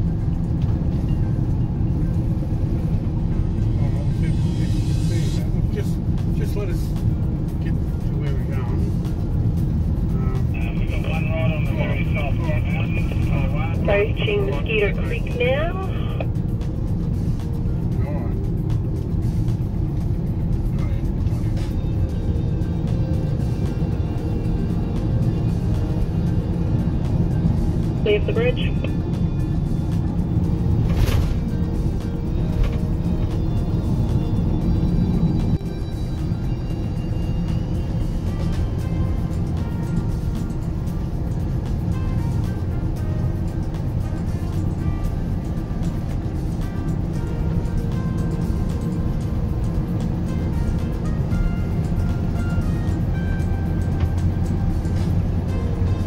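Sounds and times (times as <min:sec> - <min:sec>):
background music: 0:00.0 - 0:56.0
road and engine rumble in cabin: 0:00.0 - 0:56.0.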